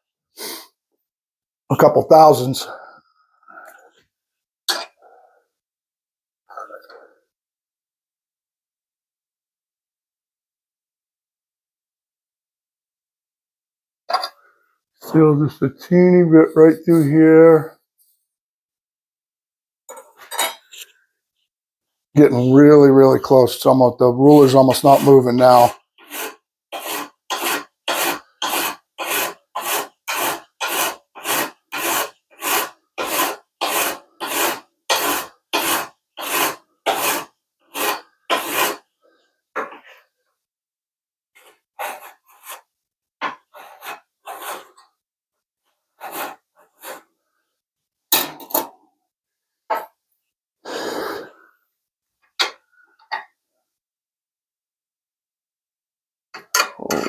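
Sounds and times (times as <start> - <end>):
file rasping on metal: 24.3 - 38.9, 41.4 - 42.7, 43.3 - 44.9, 46.0 - 47.1.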